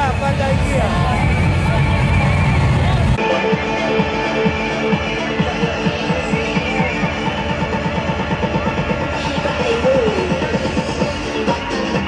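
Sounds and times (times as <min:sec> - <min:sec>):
loud music with heavy bass beat: 0:00.0 - 0:12.0.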